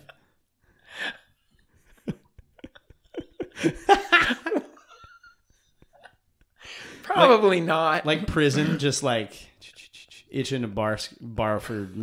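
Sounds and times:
breathy laugh: 0:00.0 - 0:07.1.

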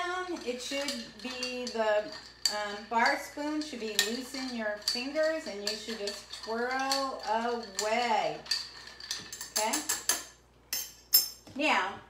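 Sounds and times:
bar spoon clinking glass: 0:00.1 - 0:11.4.

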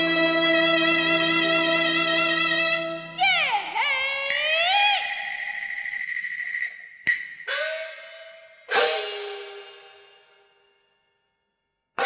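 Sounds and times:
person singing: 0:00.0 - 0:05.4
opera music: 0:00.0 - 0:05.5.

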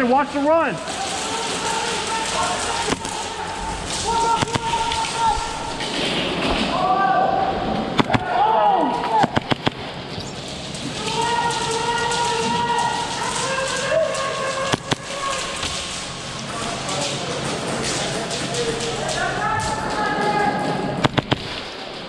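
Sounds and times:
players shouting: 0:00.9 - 0:06.0, 0:06.6 - 0:09.5, 0:10.9 - 0:21.0
airsoft gunfire cracks: 0:08.0 - 0:08.4, 0:09.1 - 0:09.8, 0:21.0 - 0:21.6.

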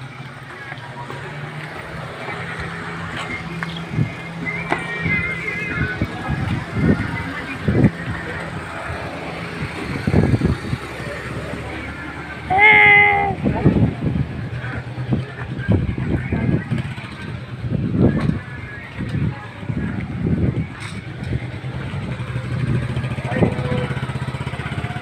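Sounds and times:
street traffic engines: 0:00.0 - 0:25.0.

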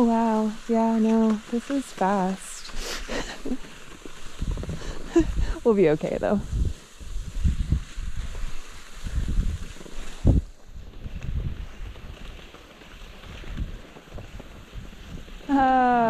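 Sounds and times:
skis gliding over snow: 0:00.0 - 0:16.0
wind buffeting microphone: 0:04.3 - 0:12.4, 0:13.0 - 0:16.0.

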